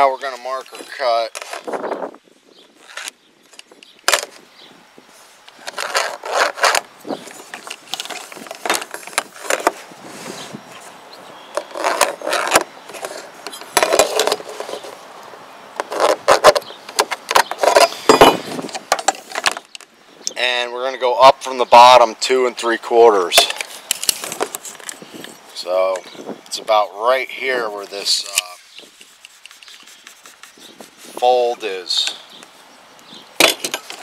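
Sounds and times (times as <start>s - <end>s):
pencil scratching: 28.9s - 31.2s.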